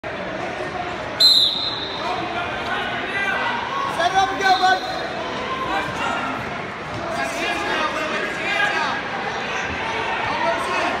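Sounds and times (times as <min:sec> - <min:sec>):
crowd voices: 0:00.0 - 0:11.0
referee's whistle blast: 0:01.2 - 0:02.2.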